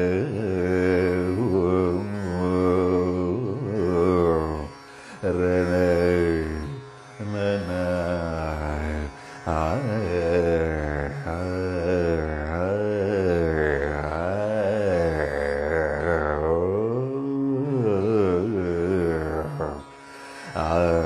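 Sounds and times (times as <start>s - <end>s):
man singing: 0.0s - 21.0s.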